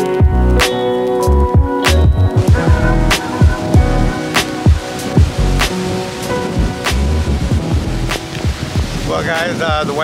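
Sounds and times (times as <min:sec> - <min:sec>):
deep bass drum hits: 0:01.6 - 0:04.1
sharp percussion hits: 0:01.6 - 0:08.9.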